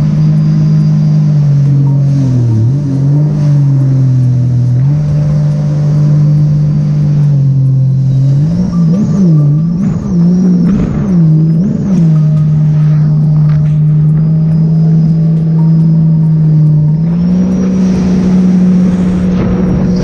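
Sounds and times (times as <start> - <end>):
personal watercraft engine running: 0.0 - 20.0.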